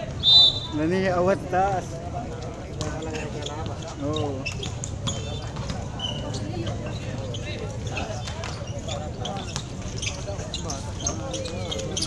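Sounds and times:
crowd chatter and shouts: 0.0s - 12.0s
basketball bouncing on concrete: 4.5s - 6.0s.

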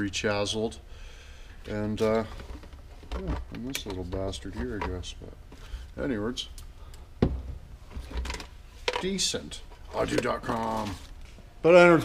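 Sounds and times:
items rubbing and clattering: 1.7s - 6.0s, 7.4s - 11.4s.

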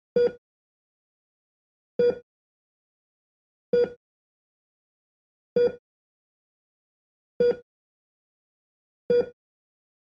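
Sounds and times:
heart monitor beeps: 0.2s - 0.4s, 2.0s - 2.3s, 3.7s - 4.0s, 5.6s - 5.8s, 7.4s - 7.7s, 9.1s - 9.4s.

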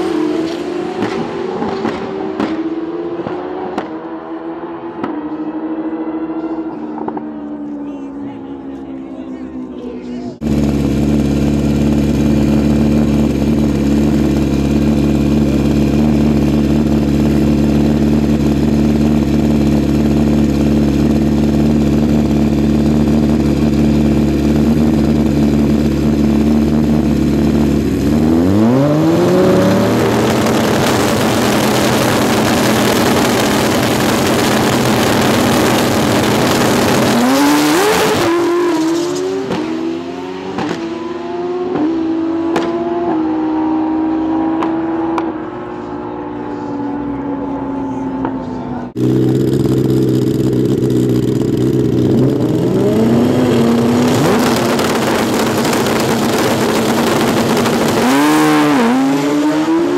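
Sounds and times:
motorcycle engines revving: 0.0s - 59.9s
motorcycles accelerating away: 0.0s - 59.9s.

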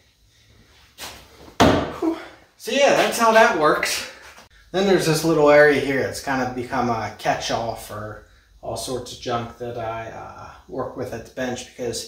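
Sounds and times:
workbench dropping with heavy thump: 1.5s - 2.0s
knock: 1.6s - 2.0s.

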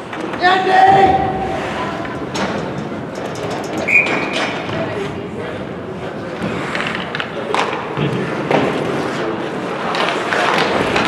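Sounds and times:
skates scraping on ice: 5.9s - 11.0s
sticks and puck clicking: 9.8s - 11.0s.

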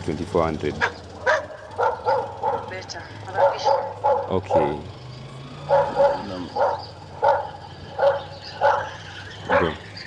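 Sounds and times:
dog barking: 0.8s - 4.8s, 5.7s - 9.8s.

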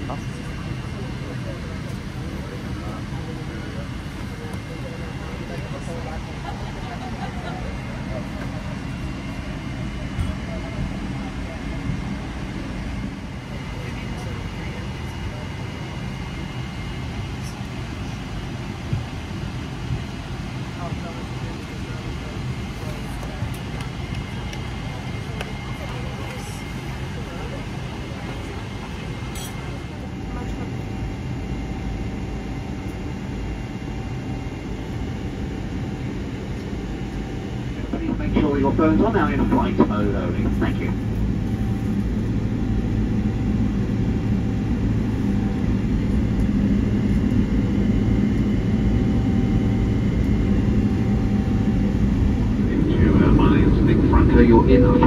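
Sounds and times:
voices murmuring: 0.0s - 55.0s
ventilation hum: 31.2s - 55.0s.

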